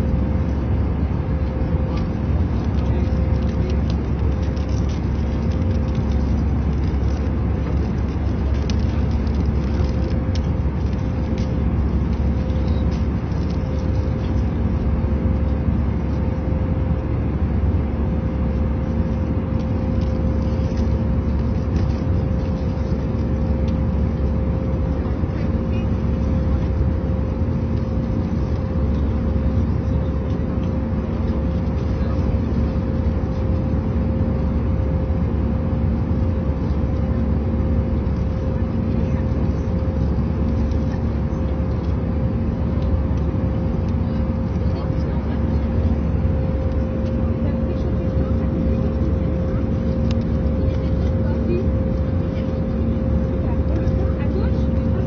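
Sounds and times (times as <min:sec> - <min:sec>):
airliner cabin roar: 0:00.0 - 0:55.0.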